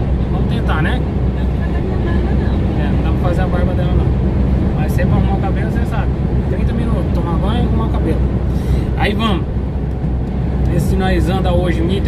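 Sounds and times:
truck engine and tyres drone: 0:00.0 - 0:12.0.

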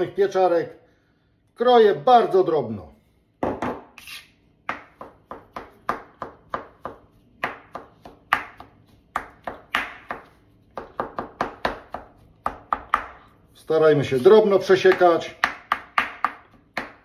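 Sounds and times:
knife chopping on cutting mat: 0:03.4 - 0:13.3, 0:14.7 - 0:17.0.

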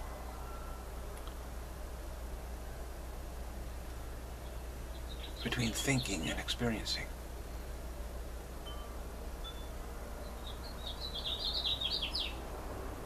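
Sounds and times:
steady low hum: 0:00.0 - 0:13.0
songbird chirping: 0:03.9 - 0:07.7, 0:08.6 - 0:12.5.

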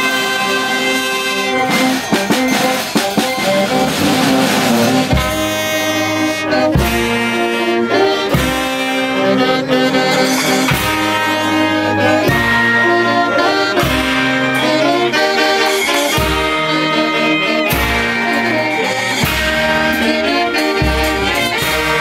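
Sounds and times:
brass band playing: 0:00.0 - 0:22.0
drum strokes: 0:01.6 - 0:05.8.

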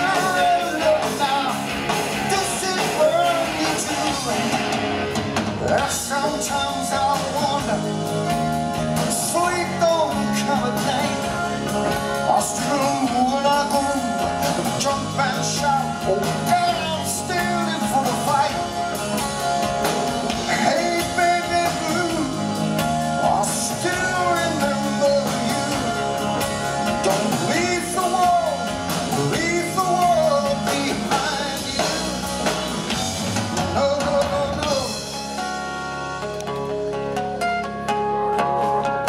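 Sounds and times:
hard rock band playing: 0:00.0 - 0:39.0
melodic lead line bending: 0:00.0 - 0:39.0.

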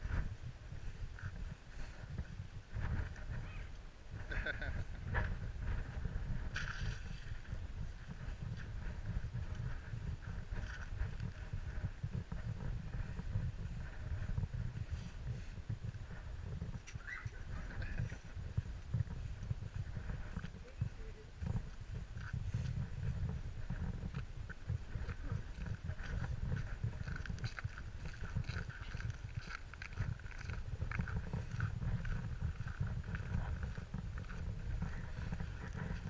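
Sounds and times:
wind buffeting microphone: 0:00.0 - 0:36.0
footsteps on snow and slush: 0:19.7 - 0:36.0.

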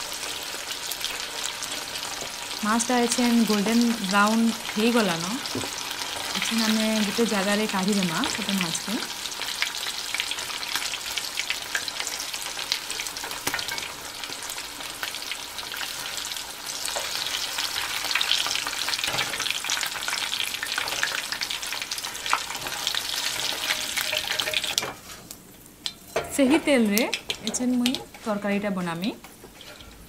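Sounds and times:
fish sizzling in hot oil: 0:00.0 - 0:30.0.

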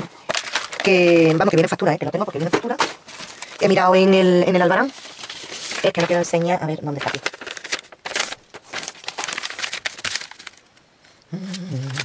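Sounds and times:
paper rustling: 0:00.0 - 0:10.8.

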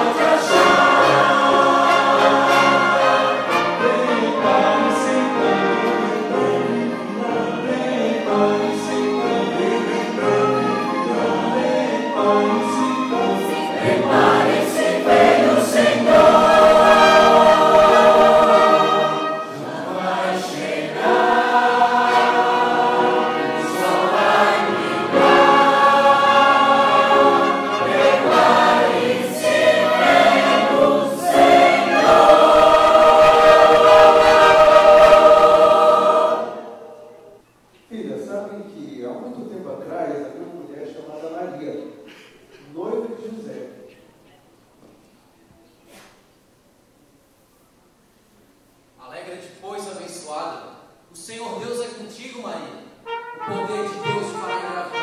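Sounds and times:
choir singing held chords: 0:00.0 - 0:37.4, 0:53.0 - 0:55.0.

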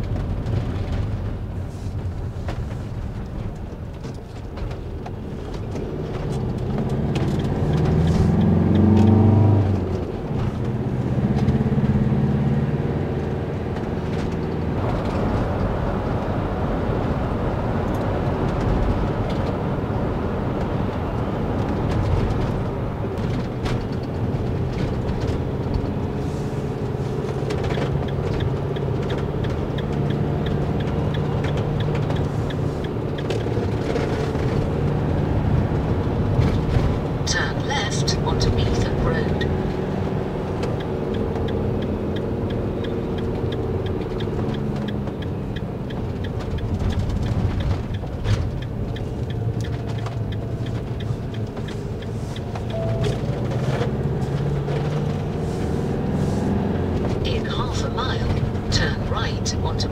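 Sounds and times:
engine drone: 0:00.0 - 0:59.9
tyres rumbling on wet road: 0:00.0 - 0:59.9
faint regular ticking: 0:40.6 - 0:53.4.

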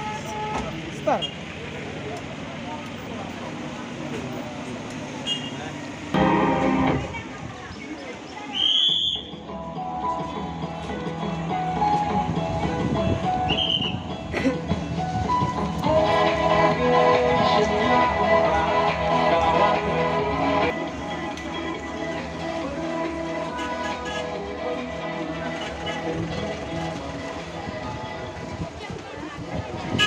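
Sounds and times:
crowd chatter: 0:00.0 - 0:30.0
traffic: 0:00.0 - 0:30.0
music: 0:06.2 - 0:07.2, 0:08.9 - 0:30.0
shrill whistle blasts: 0:08.5 - 0:09.4, 0:13.5 - 0:14.0.

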